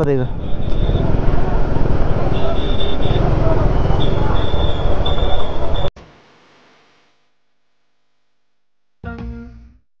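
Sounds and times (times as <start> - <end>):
motorcycle engine rumbling: 0.0 - 5.9.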